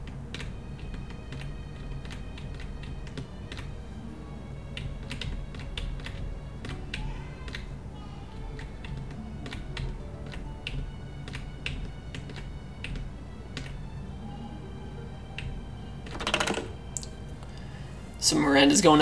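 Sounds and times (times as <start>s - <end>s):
low steady hum: 0.0s - 19.0s
keyboard keys clicking: 0.1s - 3.7s, 4.7s - 7.7s, 8.6s - 13.8s, 15.3s - 17.1s.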